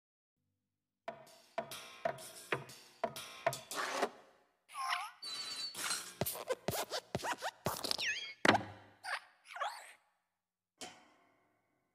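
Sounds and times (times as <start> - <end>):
squeaky springy glide: 5.2 - 8.4.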